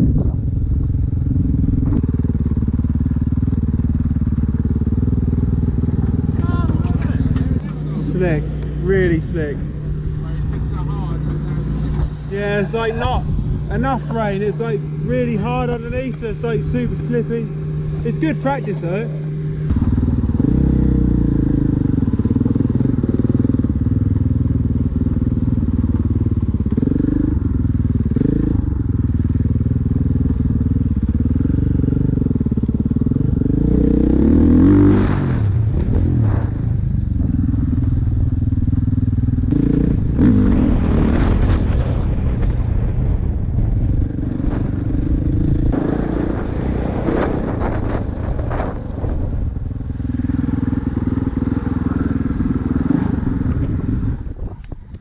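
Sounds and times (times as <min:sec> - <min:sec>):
dirt bike engine revving: 0:00.0 - 0:42.4, 0:43.8 - 0:54.5.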